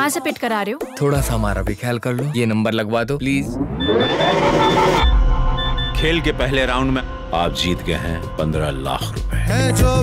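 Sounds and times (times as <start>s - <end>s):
rising whoosh: 3.2s - 7.4s
short high electronic beeps: 3.6s - 6.2s.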